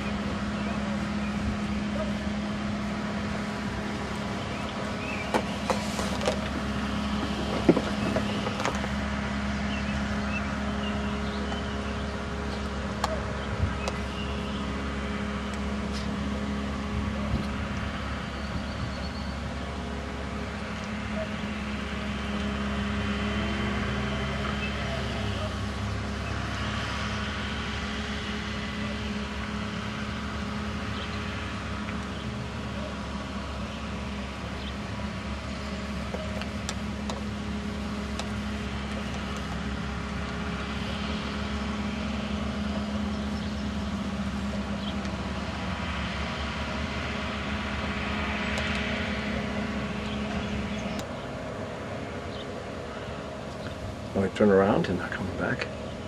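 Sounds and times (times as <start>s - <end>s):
outdoor background noise: 0.0s - 56.0s
steady mechanical hum: 0.0s - 56.0s.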